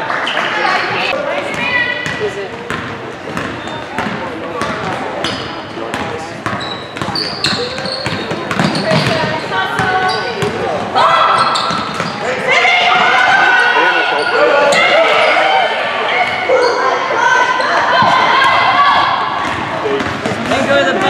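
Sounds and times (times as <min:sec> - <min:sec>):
basketball bouncing on wooden floor: 0:01.5 - 0:10.6
spectators calling out: 0:07.2 - 0:21.0.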